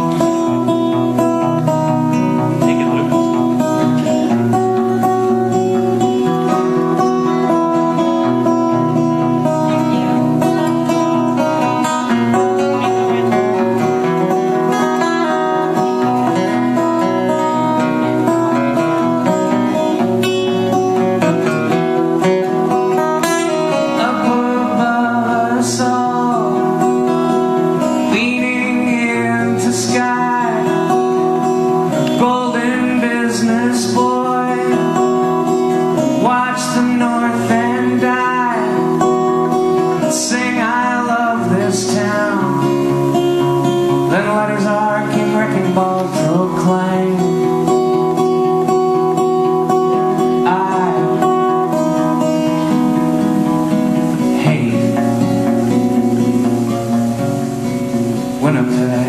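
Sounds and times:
man singing: 0:00.0 - 0:48.7, 0:49.6 - 0:56.4, 0:57.9 - 0:59.0
acoustic guitar playing: 0:00.0 - 0:59.0.

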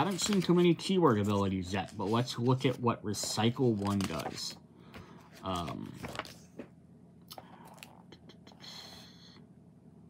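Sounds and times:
paper pages rustling: 0:00.0 - 0:06.7.

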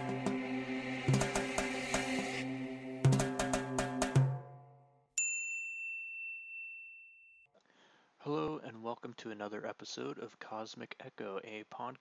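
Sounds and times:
intro music with drum hit: 0:00.0 - 0:04.8
bright bell-like ding: 0:05.2 - 0:07.5.

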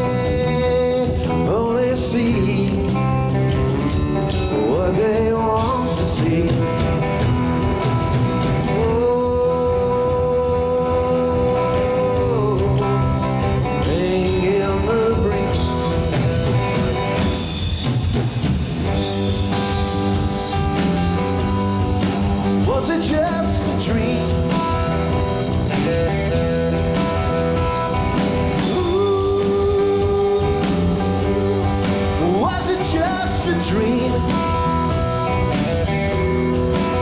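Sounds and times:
bass guitar: 0:00.0 - 0:37.0
drum kit: 0:00.0 - 0:37.0
electric guitar lead: 0:00.0 - 0:37.0.

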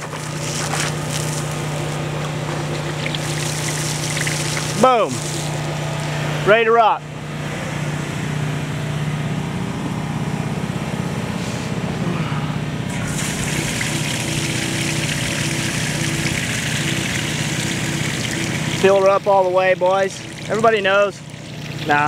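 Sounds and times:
water pouring into tank: 0:00.0 - 0:05.7, 0:12.9 - 0:22.0
water pump running: 0:00.0 - 0:22.0.

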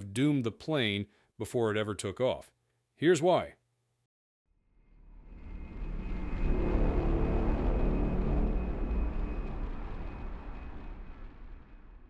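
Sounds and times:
jet airliner flyby rumble: 0:05.0 - 0:12.0.

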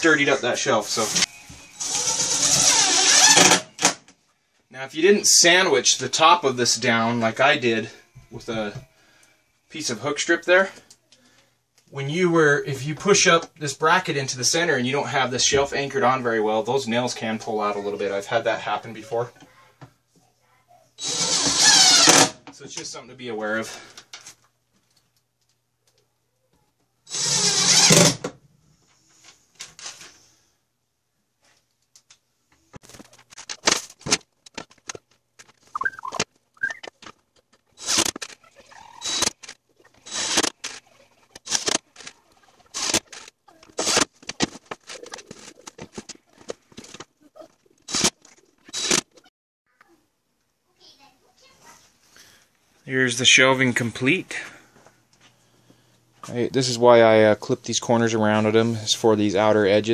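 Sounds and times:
cordless drill driving screw: 0:01.8 - 0:03.9, 0:21.0 - 0:22.4, 0:27.1 - 0:28.2, 0:37.8 - 0:38.2, 0:39.0 - 0:39.4, 0:40.0 - 0:40.8.

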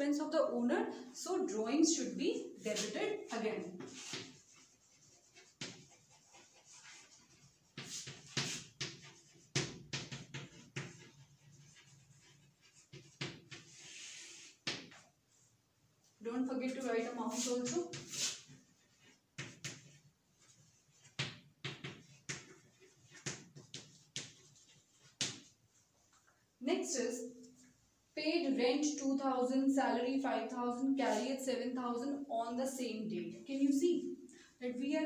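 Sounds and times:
chalk strokes on chalkboard: 0:02.4 - 0:15.6, 0:16.7 - 0:26.2, 0:31.0 - 0:31.4.

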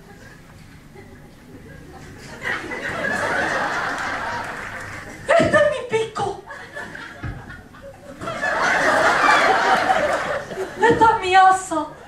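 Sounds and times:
audience laughing: 0:00.0 - 0:05.8, 0:06.5 - 0:11.0.

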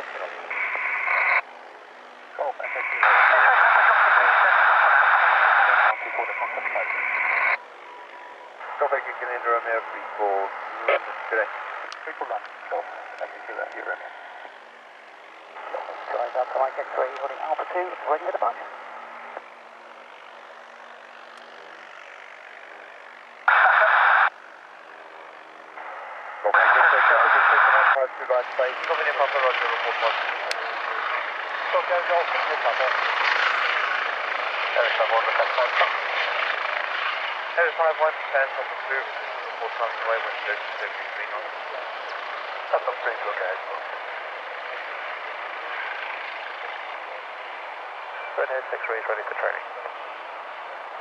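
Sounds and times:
radio squelch hiss: 0:00.0 - 0:01.4, 0:02.3 - 0:14.6, 0:15.5 - 0:19.5, 0:20.1 - 0:24.3, 0:25.0 - 0:33.8, 0:34.7 - 0:36.5, 0:37.5 - 0:44.0, 0:48.1 - 0:50.0
crackly radio voice transmissions: 0:00.0 - 0:01.5, 0:02.2 - 0:24.3, 0:24.9 - 0:51.0.

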